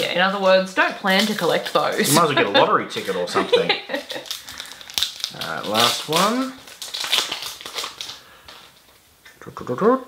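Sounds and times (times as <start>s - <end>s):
paper wrapper crinkling: 0.0s - 9.1s.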